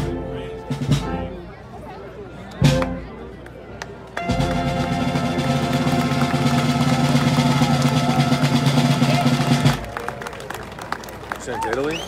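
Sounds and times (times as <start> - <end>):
marching brass band chord: 4.2 - 10.0
rolled field drum: 4.2 - 10.0.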